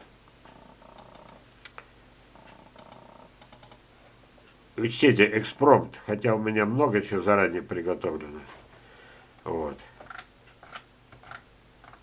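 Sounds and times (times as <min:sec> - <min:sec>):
mouse scroll-wheel ticking: 0:00.5 - 0:01.4, 0:02.4 - 0:03.8, 0:10.0 - 0:12.0.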